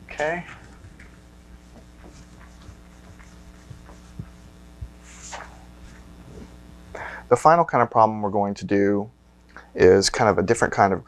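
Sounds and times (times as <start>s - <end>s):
electrical hum: 0.0s - 11.0s
eraser wiping whiteboard: 0.6s - 6.6s
soft low thumps: 0.8s - 7.0s.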